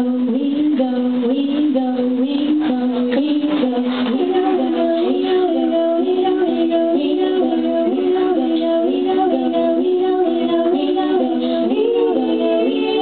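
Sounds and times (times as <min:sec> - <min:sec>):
woman singing in harmony: 0:00.0 - 0:13.0.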